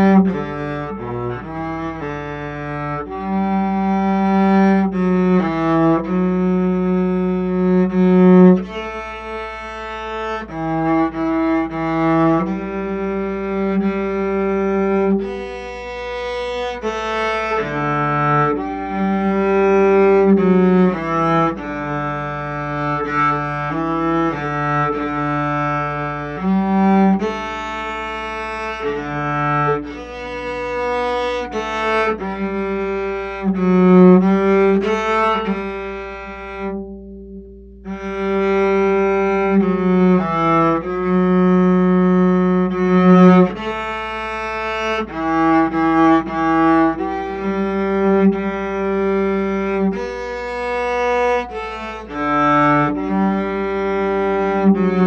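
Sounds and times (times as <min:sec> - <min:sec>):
cello bowed melody: 0:00.0 - 0:55.0.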